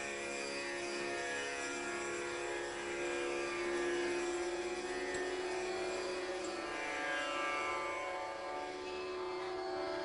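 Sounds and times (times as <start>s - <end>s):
plucked sitar phrases: 0.0s - 10.0s.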